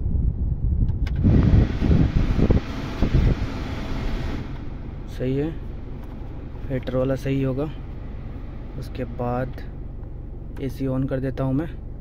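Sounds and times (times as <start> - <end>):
air conditioning fan blowing: 0.0 - 12.0
diesel engine idling: 1.2 - 12.0.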